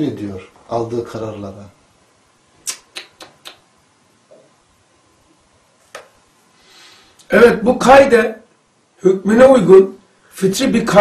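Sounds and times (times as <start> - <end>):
short sharp clicks: 2.6 - 3.7.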